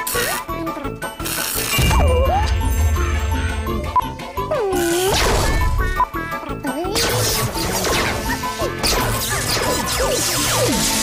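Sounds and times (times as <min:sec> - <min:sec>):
cartoon theme music with jingling: 0:00.0 - 0:11.0.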